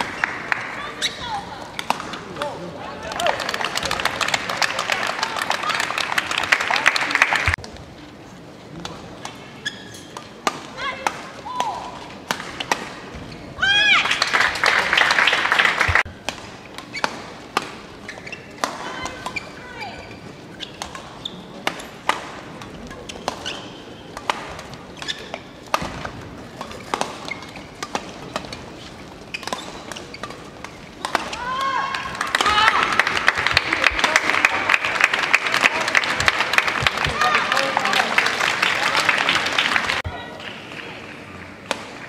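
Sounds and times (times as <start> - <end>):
shoes squeaking on court floor: 0.1 - 2.4, 9.2 - 10.5, 12.1 - 13.6, 15.9 - 31.8
crowd cheering and applauding: 3.0 - 7.6, 14.0 - 16.1, 32.1 - 41.3
racket striking shuttlecock: 16.2 - 17.9, 20.7 - 28.6, 29.4 - 33.0, 41.6 - 42.0.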